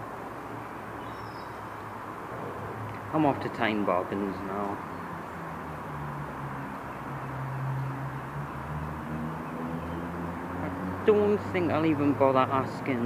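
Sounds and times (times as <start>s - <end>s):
background noise: 0.0s - 13.0s.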